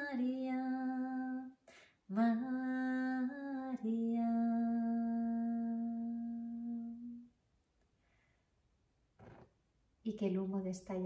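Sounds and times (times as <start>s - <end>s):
woman singing a long note: 2.1s - 7.2s.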